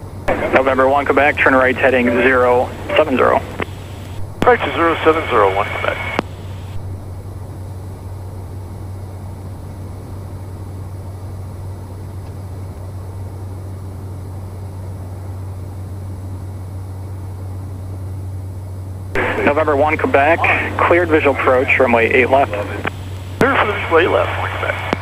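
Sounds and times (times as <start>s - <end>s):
propeller plane engine drone: 0.0s - 25.0s.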